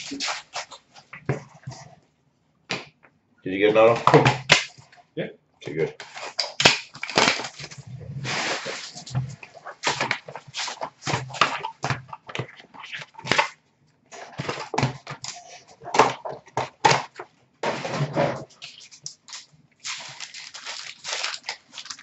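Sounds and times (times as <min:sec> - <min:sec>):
wrappers crinkling and tearing: 0:06.0 - 0:11.7, 0:18.6 - 0:22.0.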